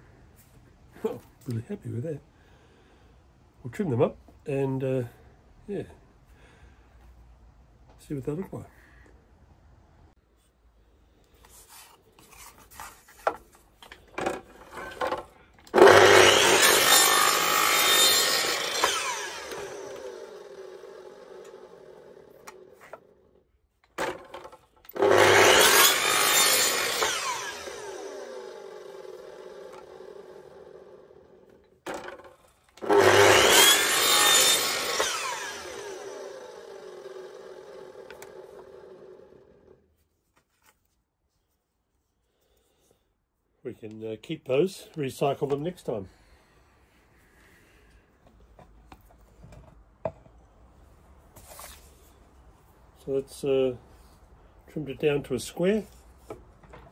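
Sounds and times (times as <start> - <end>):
table saw cutting and winding down: 14.2 - 23.1, 24.0 - 39.8.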